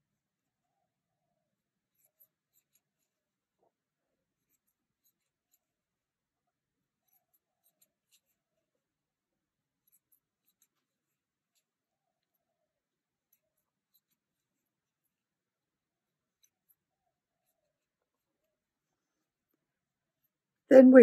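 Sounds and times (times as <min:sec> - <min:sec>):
crochet hook ticking on yarn: 0:01.9 - 0:03.1, 0:07.0 - 0:08.4, 0:09.8 - 0:11.7, 0:13.3 - 0:14.5.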